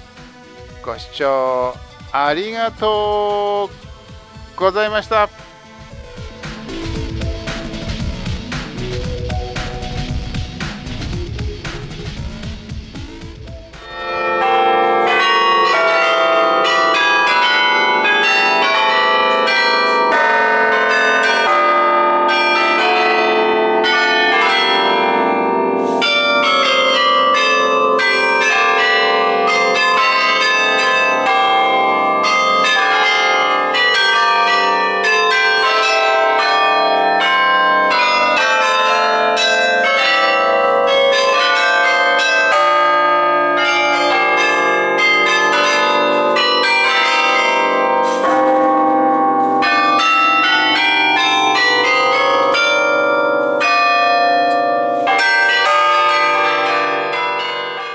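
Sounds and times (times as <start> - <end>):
carillon bells playing a melody: 13.8 - 57.9.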